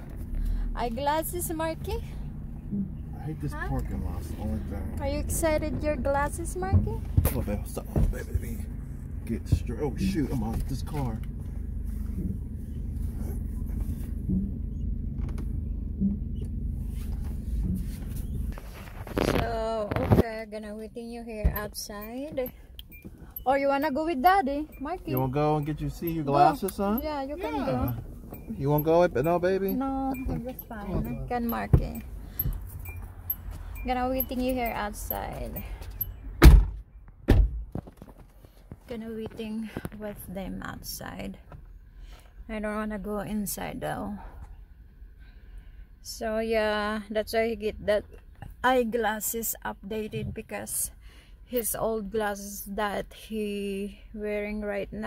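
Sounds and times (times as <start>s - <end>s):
car engine rumble inside cabin: 0.0s - 55.0s.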